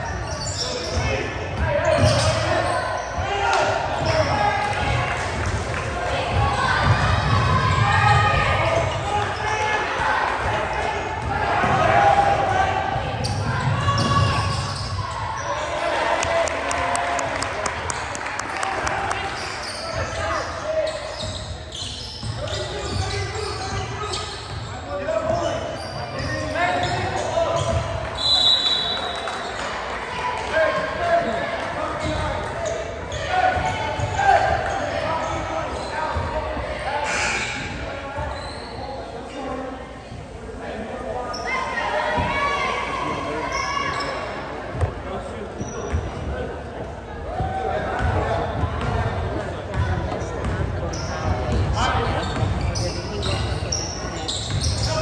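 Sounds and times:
spectators' voices: 0:00.0 - 0:55.0
basketball bouncing: 0:48.0 - 0:49.0, 0:49.7 - 0:50.7.

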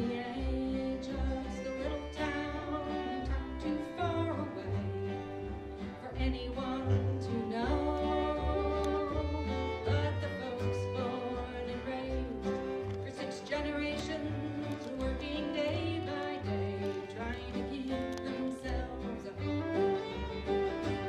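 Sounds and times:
fiddle bowing melody: 0:00.0 - 0:21.0
person singing: 0:00.0 - 0:21.0
plucked upright bass: 0:00.0 - 0:21.0
strummed acoustic guitars: 0:00.0 - 0:21.0.

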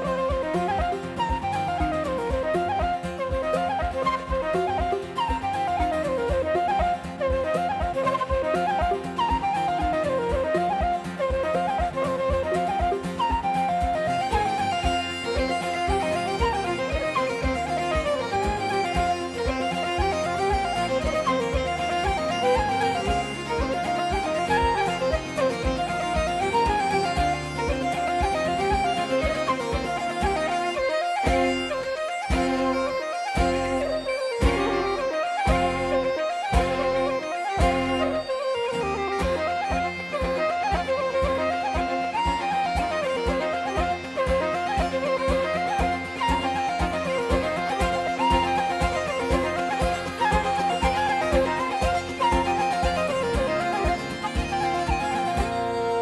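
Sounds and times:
bagpipes with steady drone: 0:00.0 - 0:56.0
fiddle: 0:00.0 - 0:56.0
flute melody: 0:00.0 - 0:56.0.

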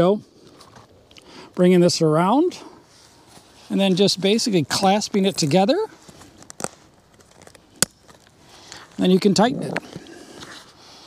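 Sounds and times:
strap handling noise: 0:04.8 - 0:09.0.

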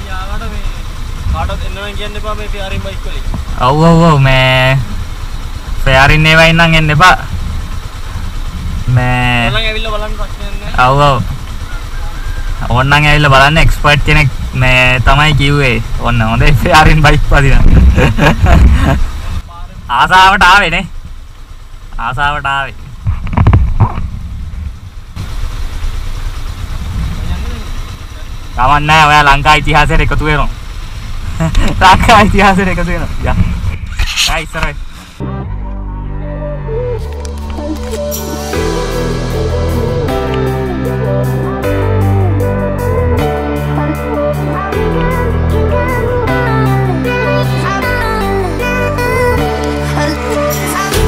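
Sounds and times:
man talking: 0:00.0 - 0:05.0, 0:05.8 - 0:07.4, 0:08.9 - 0:11.4, 0:12.6 - 0:18.2, 0:19.4 - 0:20.9, 0:22.0 - 0:22.8, 0:27.2 - 0:30.6, 0:31.4 - 0:34.8
motorcycle engines idling: 0:00.0 - 0:51.0
steady low rumble: 0:00.0 - 0:51.0
man calling out: 0:01.4 - 0:05.0, 0:08.9 - 0:11.4.

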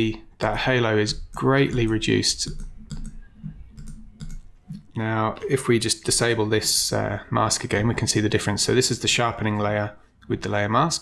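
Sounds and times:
computer mouse clicks: 0:01.2 - 0:04.9.

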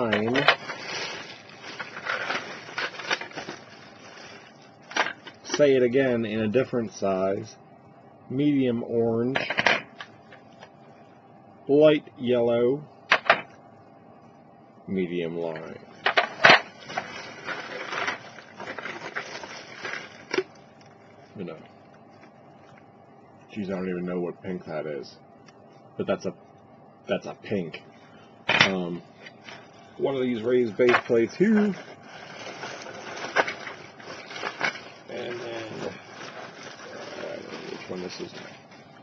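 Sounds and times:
plastic plates rustling and scraping: 0:00.0 - 0:05.6, 0:16.0 - 0:20.6, 0:30.7 - 0:38.9
plastic packaging crinkling: 0:00.0 - 0:05.7, 0:16.0 - 0:21.1, 0:29.3 - 0:39.0.

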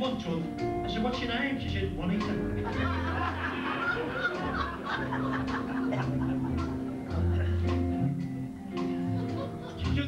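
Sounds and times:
audience laughing: 0:02.6 - 0:07.9, 0:08.9 - 0:09.9.

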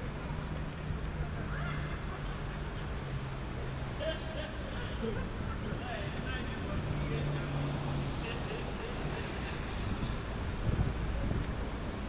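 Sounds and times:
traffic rumble: 0:00.0 - 0:12.0
vehicle engine humming: 0:00.0 - 0:12.0.

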